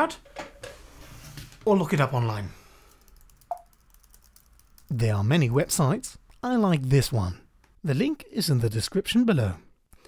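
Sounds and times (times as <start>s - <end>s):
typing on laptop keyboard: 2.9s - 4.9s.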